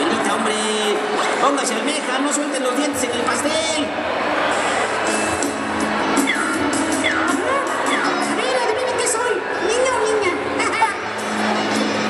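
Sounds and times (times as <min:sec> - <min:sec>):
crowd cheering and whooping: 0:00.0 - 0:02.0, 0:02.6 - 0:10.2
music playing: 0:00.0 - 0:12.0.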